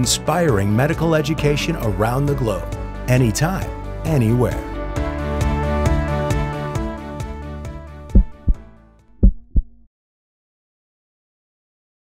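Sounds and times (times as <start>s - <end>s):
outro music: 4.7s - 9.8s
heartbeat thumps: 8.1s - 9.9s.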